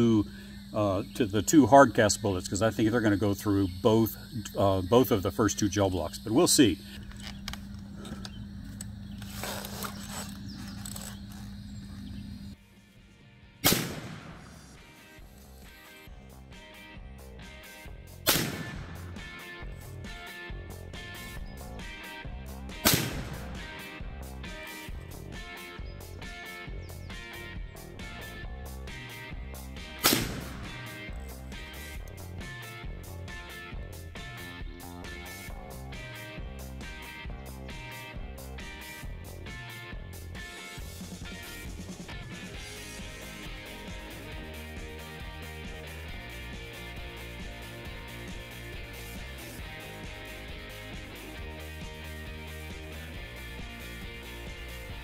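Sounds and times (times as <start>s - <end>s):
guitar background music: 12.6s - 55.0s
gunshot with ringing echo: 13.6s - 14.8s, 18.3s - 19.3s, 22.8s - 23.7s, 30.0s - 31.0s.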